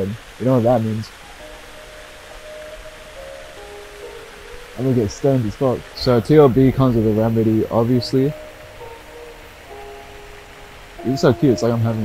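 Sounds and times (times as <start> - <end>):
faint held musical notes: 0.0 - 12.0
steady low hiss: 0.0 - 12.0.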